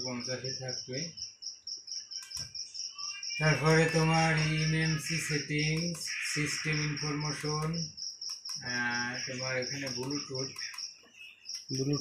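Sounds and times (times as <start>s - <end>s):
high-pitched pulsing chirping: 0.0s - 12.0s.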